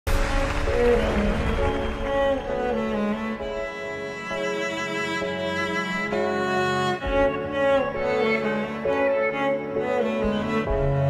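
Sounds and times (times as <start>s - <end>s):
cello and bowed strings: 0.1s - 11.0s.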